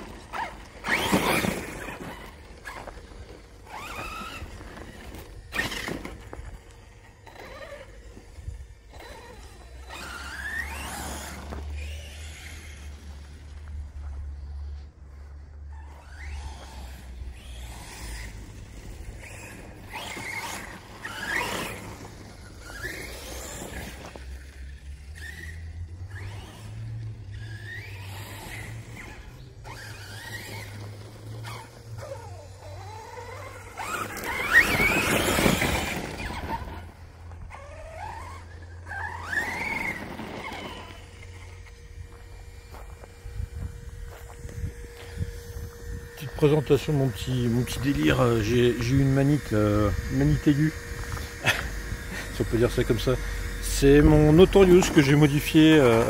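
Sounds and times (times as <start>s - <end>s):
electric motor whining: 0.0s - 56.0s.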